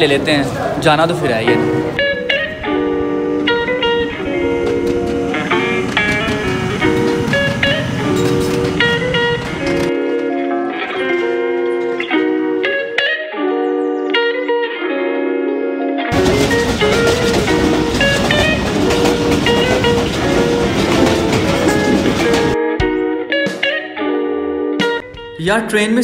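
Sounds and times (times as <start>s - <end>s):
picked guitar melody: 0.0s - 26.0s.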